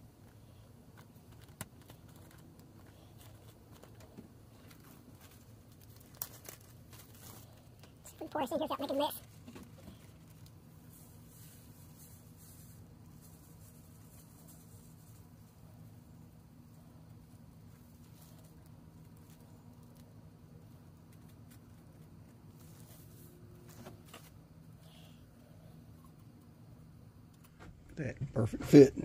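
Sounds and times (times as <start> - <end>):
steady low hum: 0.0 - 29.0
soft crinkles and taps: 0.2 - 8.2
plastic bag rustling: 1.2 - 15.8.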